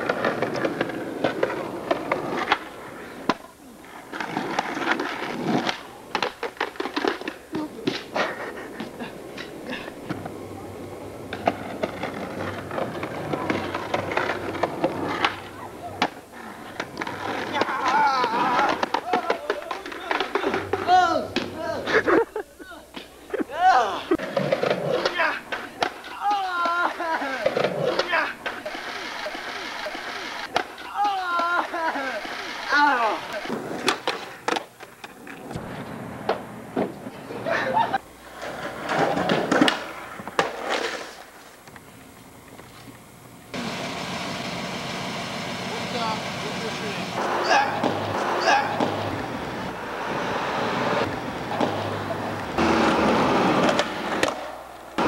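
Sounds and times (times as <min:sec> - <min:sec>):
skateboard rolling and clacking: 0:00.0 - 0:21.5, 0:33.2 - 0:41.8, 0:43.5 - 0:55.0
people's voices: 0:00.0 - 0:35.7, 0:45.6 - 0:54.5.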